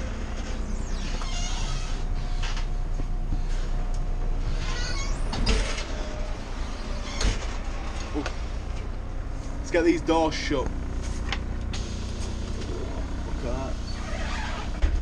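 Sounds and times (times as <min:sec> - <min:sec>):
bus engine idling: 0:00.0 - 0:14.7.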